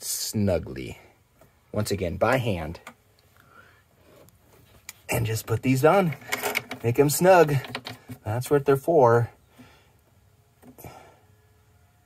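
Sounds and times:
faint handling noise: 2.2s - 8.6s.

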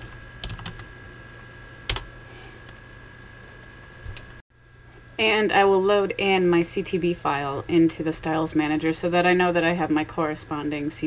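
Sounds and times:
computer keyboard typing: 0.4s - 0.8s.

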